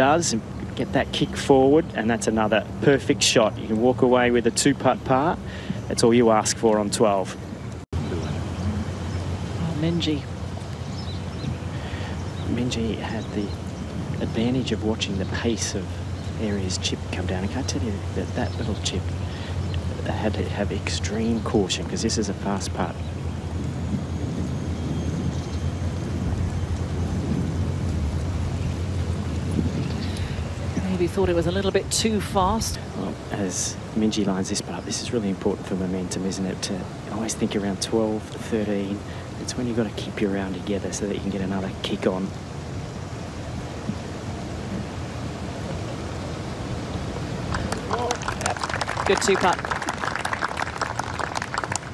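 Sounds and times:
faint hiss: 0.0 - 51.9
wind rumble on microphone: 0.0 - 51.9.

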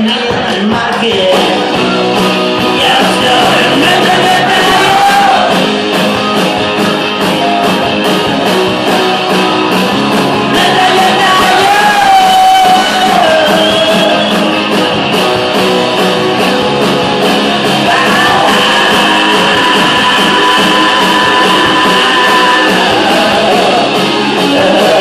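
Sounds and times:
electric guitars: 0.0 - 25.0
steady drum beat: 0.0 - 25.0.

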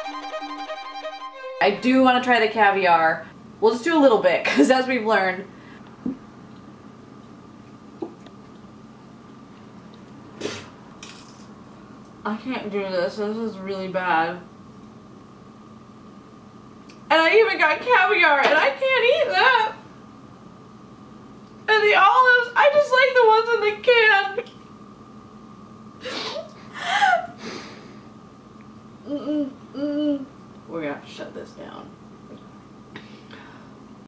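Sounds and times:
breathy huff: 26.0 - 28.1
woman gagging: 26.1 - 27.4
woman mock sobbing: 26.1 - 27.4.

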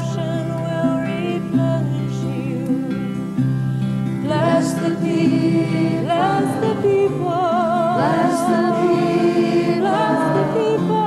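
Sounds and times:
voices singing in harmony: 4.2 - 11.0.

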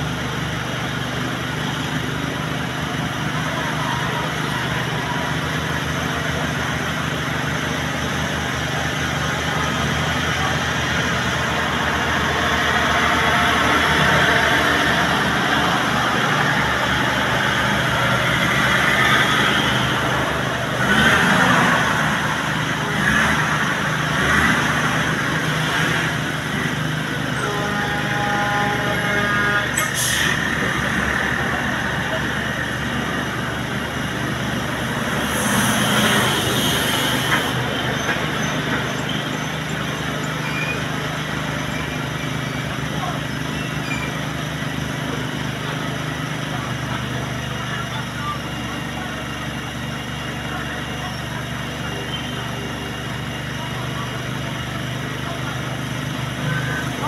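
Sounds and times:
heavy truck passing: 0.0 - 57.0.

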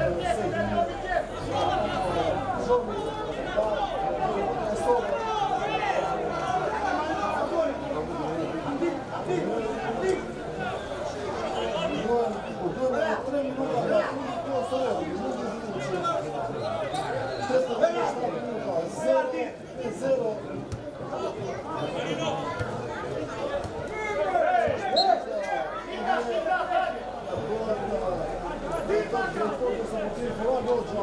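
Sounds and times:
people shouting and calling: 0.0 - 16.3
spectators chattering: 0.0 - 31.0.

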